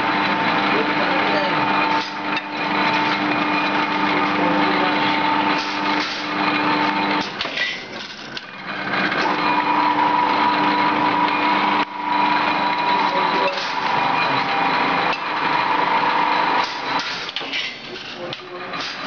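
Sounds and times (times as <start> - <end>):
machine hum with held tones: 0.0 - 18.8.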